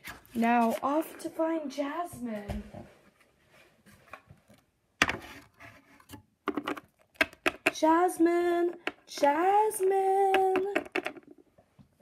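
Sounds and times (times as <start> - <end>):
plastic toys knocking on hard surface: 6.5 - 8.0, 8.7 - 11.4.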